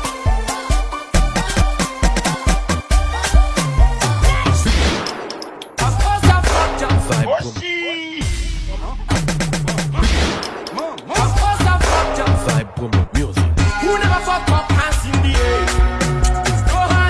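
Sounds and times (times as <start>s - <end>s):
dance music: 0.0s - 17.0s
heavy bass line: 1.2s - 5.1s, 5.8s - 17.0s.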